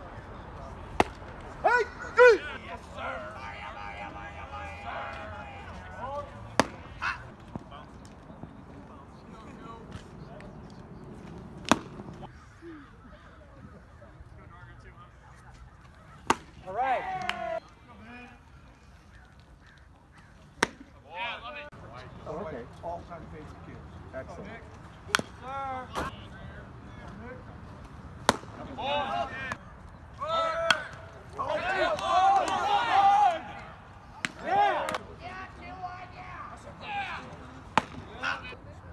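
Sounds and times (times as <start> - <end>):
spectators chattering: 0.0 - 38.9
baseball bat cracking ball: 0.9 - 1.4, 6.5 - 7.6, 11.2 - 12.3, 16.2 - 16.6, 20.6 - 20.9, 25.1 - 25.4, 28.2 - 28.8, 34.2 - 35.1, 37.6 - 38.2
people shouting: 1.6 - 7.3, 16.3 - 17.6, 30.2 - 37.3.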